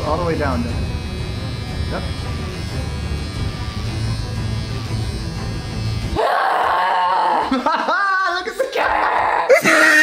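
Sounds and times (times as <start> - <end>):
electric beard trimmer buzzing: 0.0 - 7.7.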